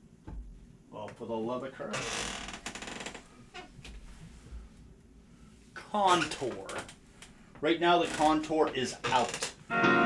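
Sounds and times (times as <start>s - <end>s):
soft handling clicks and knocks: 0.2s - 1.3s.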